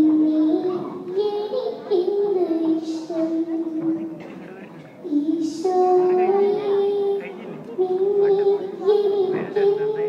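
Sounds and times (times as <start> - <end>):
girl singing into a microphone: 0.0 - 4.2, 5.0 - 10.0.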